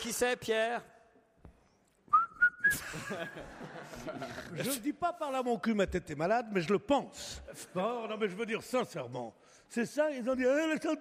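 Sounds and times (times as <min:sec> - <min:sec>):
person whistling rising note: 0:02.1 - 0:03.0.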